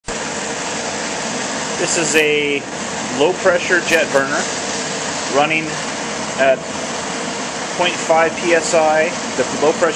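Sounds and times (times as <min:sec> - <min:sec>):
gas burner rushing: 0:00.0 - 0:09.9.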